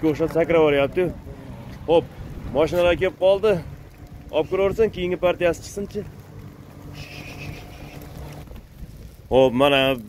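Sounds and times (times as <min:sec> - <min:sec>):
wind on microphone: 0:00.6 - 0:05.3, 0:06.7 - 0:09.9.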